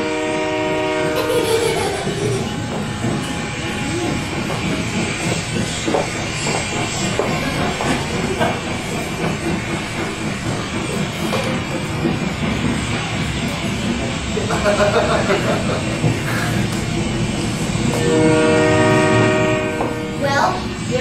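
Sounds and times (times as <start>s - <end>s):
departing train rushing noise: 0.0s - 21.0s.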